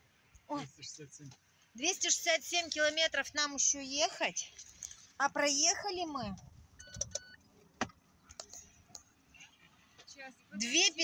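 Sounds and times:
faint clicks and taps: 6.4s - 9.1s.

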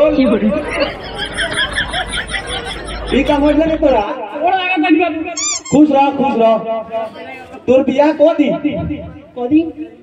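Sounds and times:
man speaking into a microphone: 0.0s - 0.7s, 3.1s - 10.0s
men chattering: 0.0s - 4.2s.

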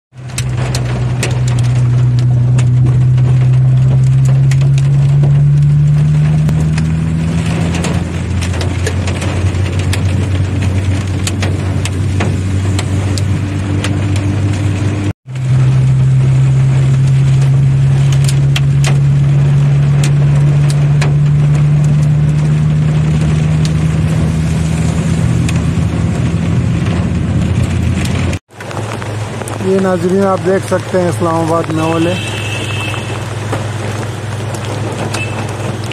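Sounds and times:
car engine hum: 0.2s - 35.9s
rain and hail on car roof: 0.2s - 35.9s.

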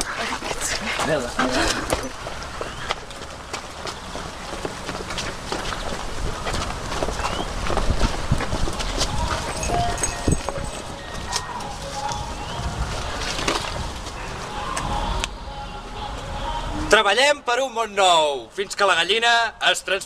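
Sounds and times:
footsteps on stone steps: 0.0s - 14.3s
scattered voices: 8.4s - 13.4s, 14.1s - 17.2s.

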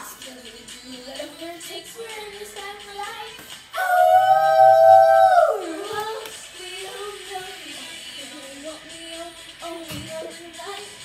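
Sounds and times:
pop song: 0.0s - 11.0s
howl-like held vocal note: 3.8s - 5.8s.

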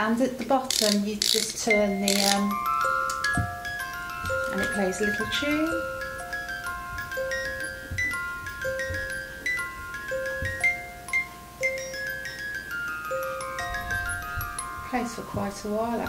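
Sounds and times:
music box melody: 0.6s - 16.0s
soft low bumps: 3.2s - 11.0s, 13.6s - 16.0s.

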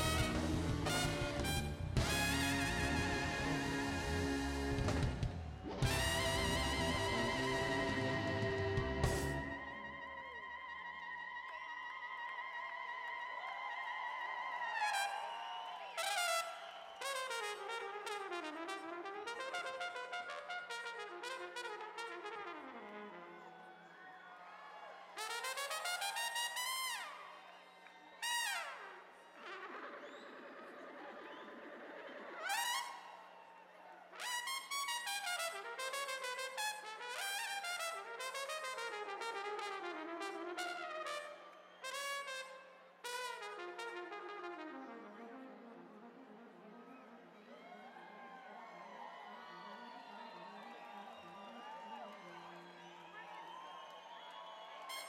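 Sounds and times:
solo trumpet playing: 0.0s - 11.3s, 14.9s - 23.4s, 25.2s - 27.4s, 34.2s - 47.2s.

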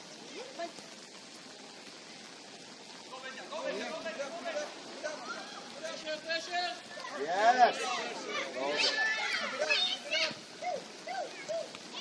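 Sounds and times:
light rain hiss: 0.0s - 12.0s
distant voices calling out: 0.1s - 12.0s.

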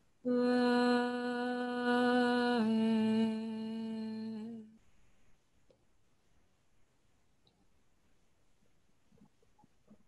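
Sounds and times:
person humming steady note: 0.2s - 4.8s.

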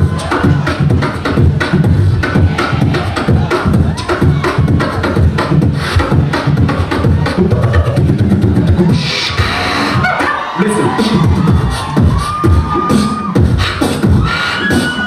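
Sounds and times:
beatboxing into a microphone: 0.0s - 15.0s
whistle-like vocal tone: 12.9s - 15.0s.

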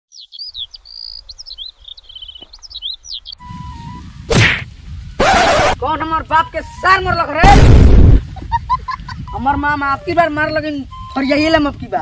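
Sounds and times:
small bird chirping: 0.1s - 3.9s
outdoor background noise: 0.1s - 12.0s
burst of noise: 3.8s - 5.8s, 7.4s - 8.4s
sharp whack: 4.3s - 5.8s, 7.4s - 8.2s.

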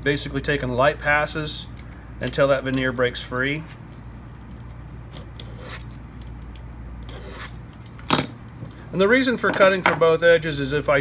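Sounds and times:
knife scoring wood veneer: 7.1s - 7.6s.

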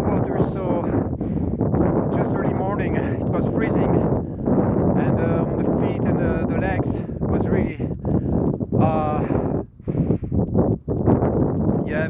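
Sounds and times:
wind buffeting microphone: 0.0s - 12.0s
man speaking hesitantly: 8.8s - 9.5s.

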